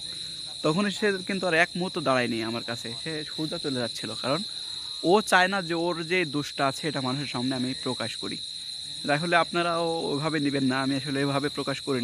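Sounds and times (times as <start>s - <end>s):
crickets chirring: 0.0s - 12.0s
man talking: 0.5s - 8.4s, 9.0s - 12.0s.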